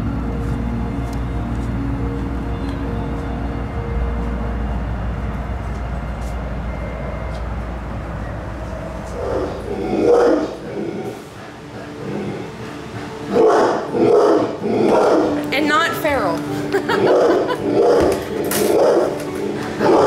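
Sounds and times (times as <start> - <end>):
low rumble: 0.0 - 11.4
animal barking calls: 9.1 - 15.4, 16.9 - 20.0.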